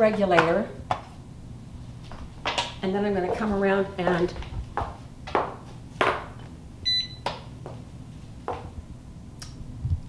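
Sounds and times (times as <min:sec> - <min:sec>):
short electronic beep: 0:06.9 - 0:07.2.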